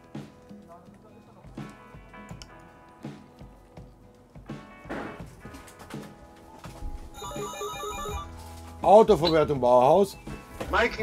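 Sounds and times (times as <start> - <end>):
background music: 0.0 - 11.0
telephone electronic ringtone: 7.2 - 8.4.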